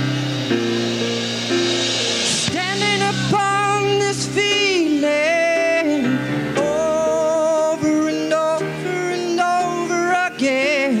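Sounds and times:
country-rock band playing: 0.0s - 11.0s.

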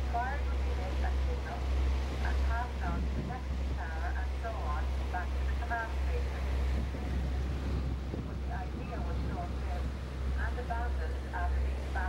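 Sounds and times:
boat engine rumbling: 0.0s - 12.0s
people talking indistinctly: 0.0s - 12.0s.

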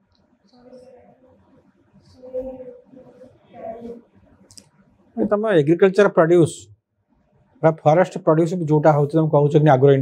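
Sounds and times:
faint murmur of a voice: 0.5s - 1.4s, 2.0s - 4.2s.

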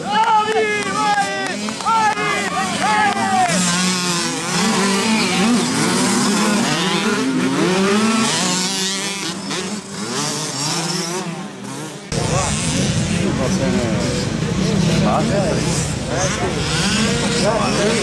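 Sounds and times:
dirt bikes racing past: 0.0s - 18.0s.

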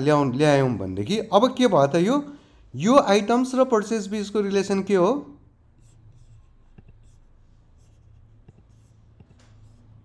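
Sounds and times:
man speaking: 0.0s - 5.4s.

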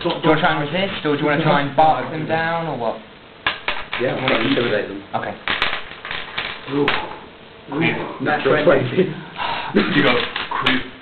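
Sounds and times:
dice clattering on a table: 3.5s - 4.7s, 5.4s - 7.0s.

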